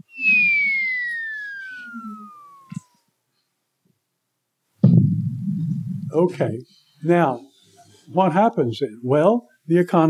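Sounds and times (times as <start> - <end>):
descending whistle: 0.0 - 3.1.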